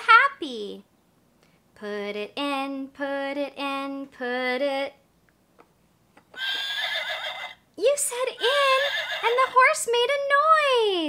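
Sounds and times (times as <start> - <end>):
horse whinnying: 6.3 - 7.6, 8.4 - 9.4.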